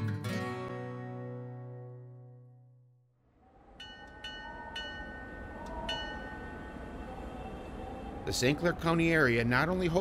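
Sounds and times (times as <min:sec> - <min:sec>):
streetcar bell dinging: 0:03.8 - 0:07.8
streetcar rumbling on rails: 0:03.8 - 0:10.0.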